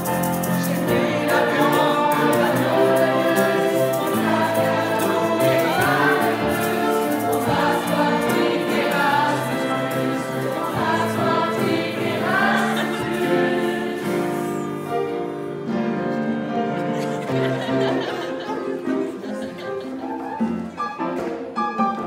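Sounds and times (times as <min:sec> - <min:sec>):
grand piano: 0:00.0 - 0:22.0
violins: 0:00.0 - 0:22.0
group singing: 0:00.4 - 0:15.2.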